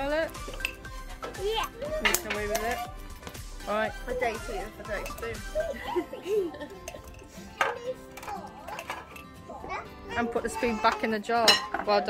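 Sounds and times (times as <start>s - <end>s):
background music: 0.0s - 12.0s
children's voices: 7.3s - 11.2s.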